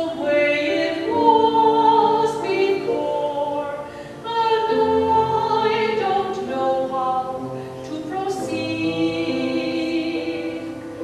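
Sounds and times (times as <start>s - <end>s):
choir singing in parts: 0.0s - 7.4s.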